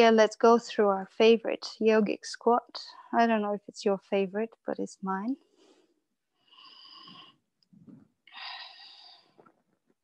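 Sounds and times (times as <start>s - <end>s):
woman breathing: 5.5s - 7.6s, 8.2s - 9.7s.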